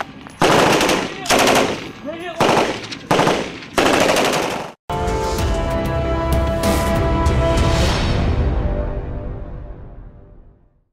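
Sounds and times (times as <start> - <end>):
machine gun bursts: 0.4 - 4.8.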